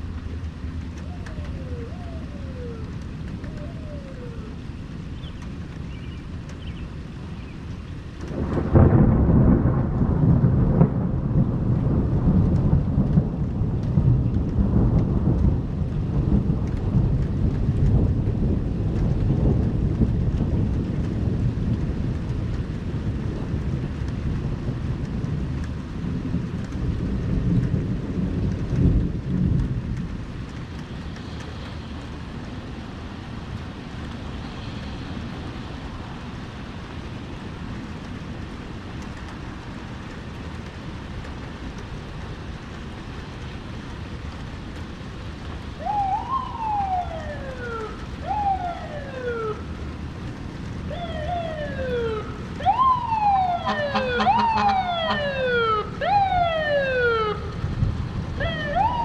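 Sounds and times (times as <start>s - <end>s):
steady rain: 0.0s - 59.0s
thunder rumbling: 0.0s - 59.0s.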